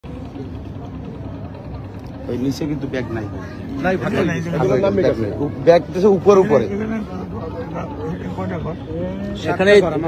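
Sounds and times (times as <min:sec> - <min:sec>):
group of people talking: 0:00.0 - 0:10.0.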